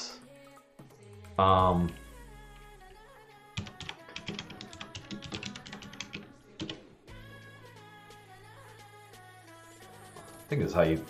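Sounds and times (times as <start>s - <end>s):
faint background music: 0.0s - 11.0s
typing on a keyboard: 3.6s - 6.8s.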